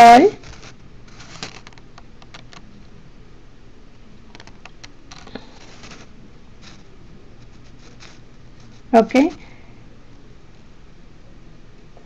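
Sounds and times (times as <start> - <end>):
computer keyboard typing: 1.6 - 2.6, 4.3 - 4.9.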